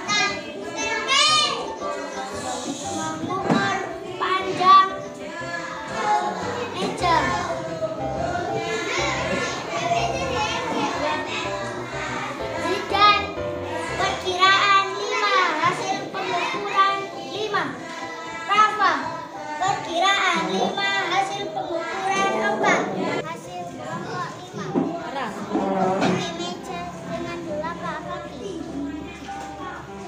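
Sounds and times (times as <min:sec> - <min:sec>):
children's voices: 0:00.0 - 0:30.0.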